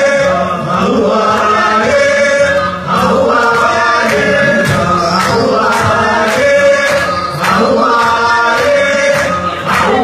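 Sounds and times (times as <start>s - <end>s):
group chanting song: 0.0s - 10.0s.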